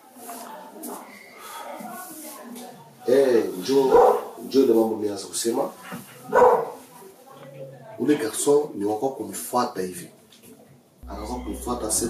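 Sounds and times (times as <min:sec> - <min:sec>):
man talking: 0:11.0 - 0:12.0.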